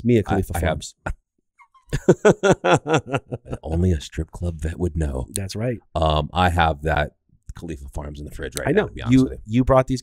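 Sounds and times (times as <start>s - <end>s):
man laughing hard: 1.9s - 4.0s.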